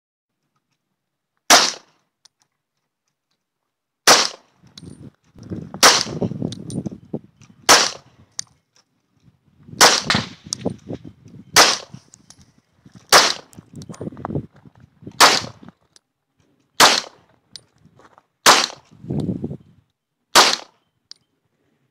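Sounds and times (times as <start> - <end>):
handgun shots: 1.5 - 2.0, 4.1 - 4.4, 5.8 - 6.2, 7.7 - 8.0, 9.8 - 10.5, 11.6 - 11.9, 13.1 - 13.5, 15.2 - 15.6, 16.8 - 17.2, 18.4 - 18.8, 20.4 - 20.8.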